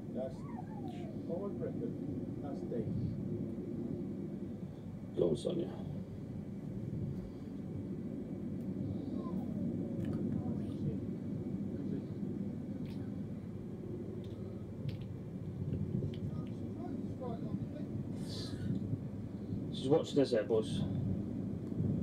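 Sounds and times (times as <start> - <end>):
faint distant voices calling: 0.0 - 6.1
steady low rumble: 0.0 - 22.0.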